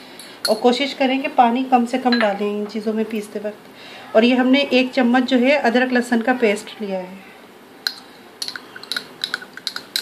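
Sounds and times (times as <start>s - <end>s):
metal spoon clinking against glass: 7.9s - 10.0s.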